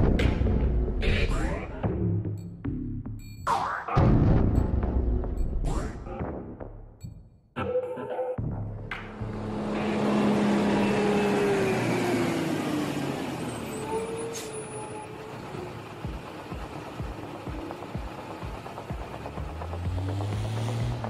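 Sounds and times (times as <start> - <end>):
diesel vehicle running with whine: 8.5 - 21.0.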